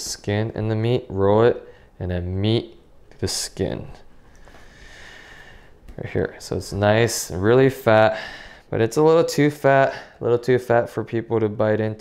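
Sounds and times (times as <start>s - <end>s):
soft breath out: 4.3s - 5.8s.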